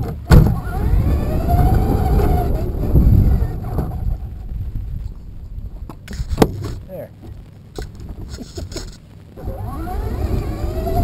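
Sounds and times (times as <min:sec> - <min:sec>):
electric motor whining: 0:00.0 - 0:04.4, 0:09.4 - 0:11.0
tyres rumbling on asphalt: 0:00.0 - 0:11.0.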